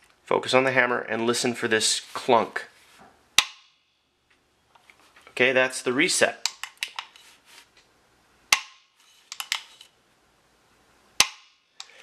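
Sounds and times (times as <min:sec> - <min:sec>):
sharp metallic clicks: 0:06.4 - 0:07.1, 0:08.5 - 0:09.9, 0:11.2 - 0:12.0.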